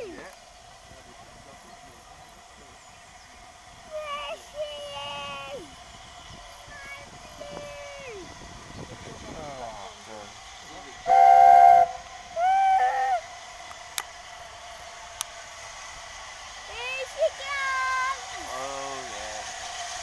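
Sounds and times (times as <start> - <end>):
steam locomotive chime whistle: 11.0 - 13.2.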